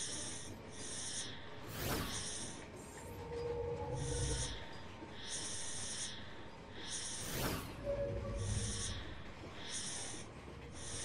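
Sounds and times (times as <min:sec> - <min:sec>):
low rumble: 0:02.7 - 0:05.2, 0:07.2 - 0:09.6
brief tone: 0:03.0 - 0:05.0, 0:07.2 - 0:09.3.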